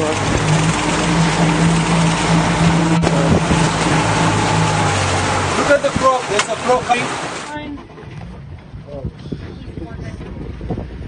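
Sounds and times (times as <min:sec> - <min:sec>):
motorboat engine running: 0:00.0 - 0:11.0
water noise: 0:00.0 - 0:11.0
wind: 0:00.0 - 0:11.0.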